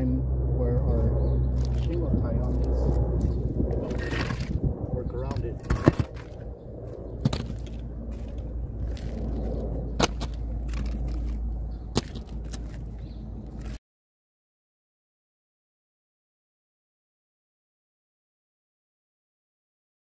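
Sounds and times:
low steady rumble: 0.0 - 13.8
scraping on shingles: 2.6 - 4.6, 5.3 - 6.5, 7.1 - 13.8.

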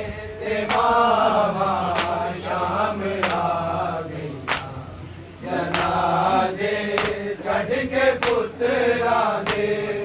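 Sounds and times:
men chanting in unison: 0.0 - 10.0.

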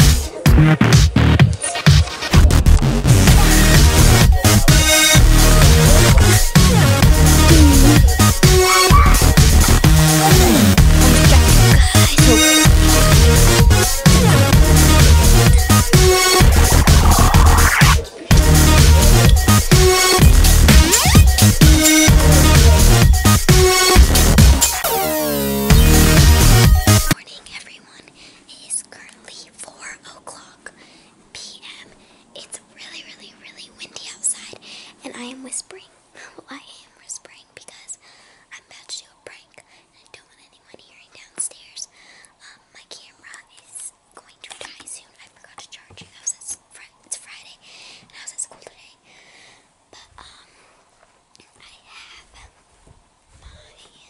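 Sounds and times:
electronic music: 0.0 - 27.2
girl whispering: 4.5 - 14.4, 27.1 - 49.2, 49.9 - 50.6, 51.4 - 52.6, 53.4 - 54.0.

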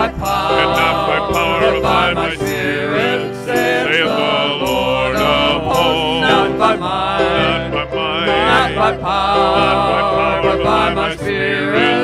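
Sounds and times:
low accompaniment: 0.0 - 12.0
men singing in harmony: 0.0 - 12.0.

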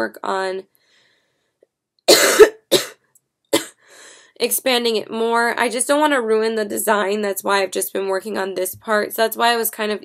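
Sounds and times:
woman coughing: 2.1 - 3.0, 3.6 - 3.8.

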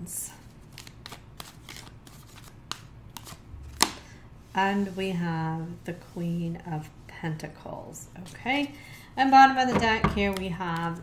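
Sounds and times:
cards clicking and sliding: 0.7 - 4.0.

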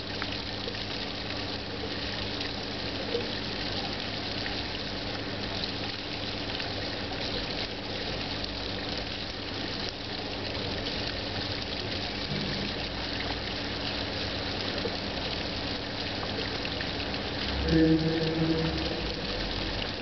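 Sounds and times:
fountain water splashing: 0.0 - 20.0.

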